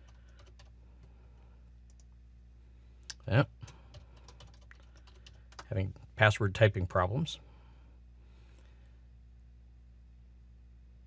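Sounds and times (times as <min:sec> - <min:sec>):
keyboard keystrokes and clicks: 0:00.0 - 0:01.1, 0:03.6 - 0:05.7
low electrical hum: 0:00.0 - 0:11.0.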